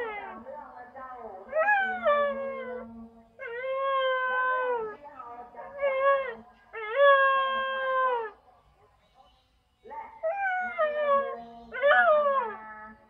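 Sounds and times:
dog howling: 1.5 - 5.0, 10.2 - 13.0.

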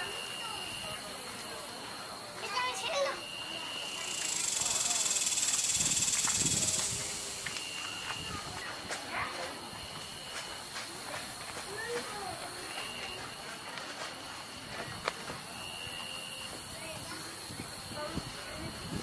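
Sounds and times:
insect trilling high: 2.7 - 7.3
short insect buzzing call: 3.1 - 8.3
loud high insect buzz: 3.1 - 8.4.

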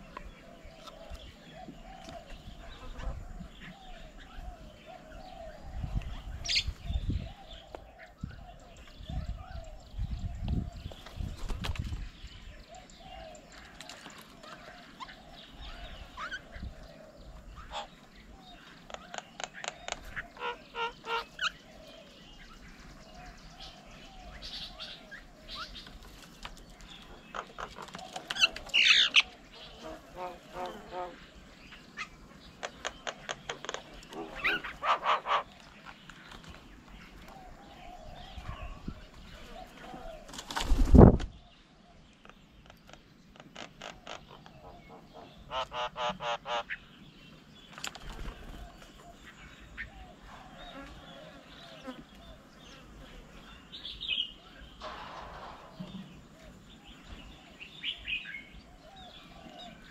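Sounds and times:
loud thump: 54.8 - 56.2.

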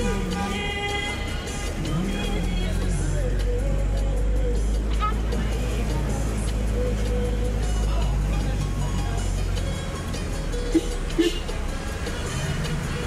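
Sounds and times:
car engine rumble and road noise: 0.0 - 13.0
music playing: 0.0 - 13.0.

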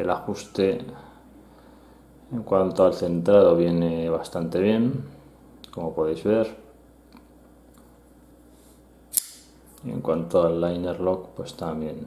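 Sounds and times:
folding knife clicking open: 9.1 - 9.5.

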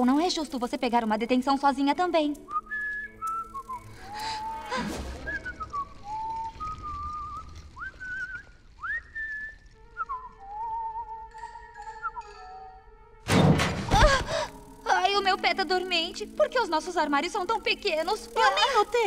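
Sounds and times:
faint background music: 0.0 - 19.0
person whistling a tune: 2.5 - 12.6.

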